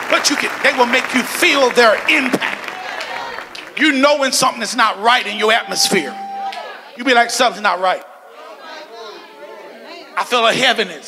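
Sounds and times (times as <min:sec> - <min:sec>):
person preaching: 0:03.7 - 0:11.0.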